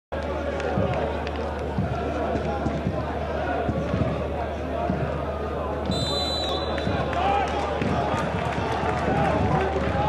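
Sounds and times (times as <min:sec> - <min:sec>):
crowd voices and calls: 0:00.1 - 0:10.0.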